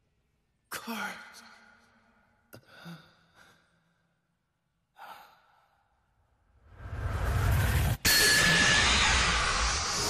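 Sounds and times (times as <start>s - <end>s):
energy surge rush with rumble: 6.7s - 10.0s
loud burst with ringing tones: 8.0s - 10.0s.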